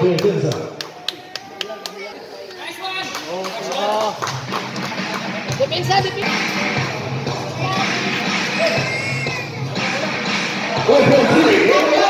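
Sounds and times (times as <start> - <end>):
music with a steady beat: 4.2 - 12.0.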